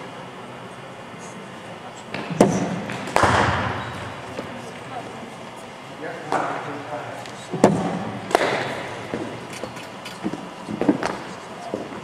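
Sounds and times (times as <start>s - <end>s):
cricket bat striking ball: 2.2s - 3.8s, 7.6s - 9.3s.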